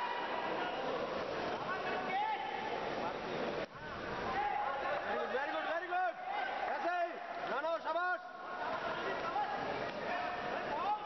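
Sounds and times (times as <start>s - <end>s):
indoor crowd murmur: 0.0s - 11.0s.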